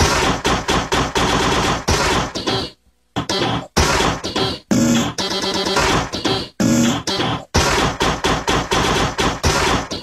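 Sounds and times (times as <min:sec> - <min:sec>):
stuttering electronic dance music: 0:00.0 - 0:10.0.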